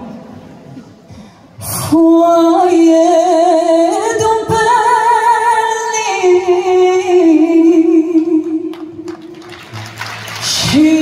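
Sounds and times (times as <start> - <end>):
woman singing a slow ballad: 1.6 - 9.1, 10.4 - 11.0.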